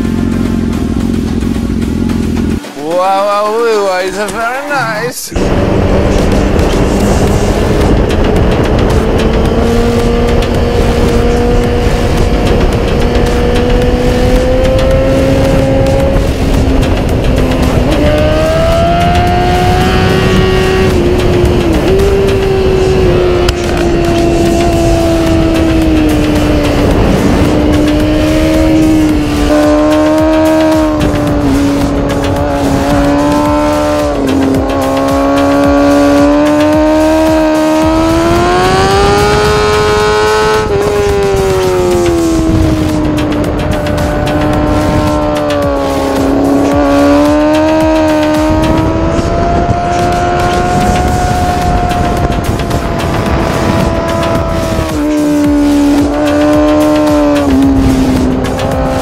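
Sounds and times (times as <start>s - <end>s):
motorcycle engine at high revs: 0.0s - 59.0s
wind rush on microphone: 4.7s - 59.0s.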